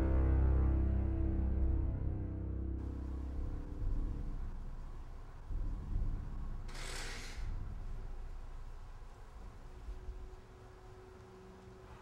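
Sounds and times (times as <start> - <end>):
low rumbling background noise: 0.0 - 12.0
burst of hiss: 6.7 - 7.6.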